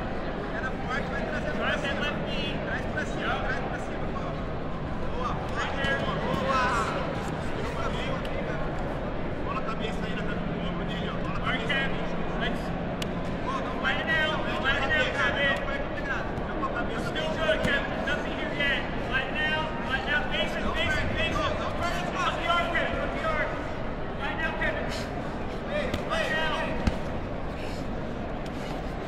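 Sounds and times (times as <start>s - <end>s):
crowd murmur: 0.0s - 29.0s
steady low hum: 0.0s - 29.0s
people shouting coaching: 13.6s - 27.1s.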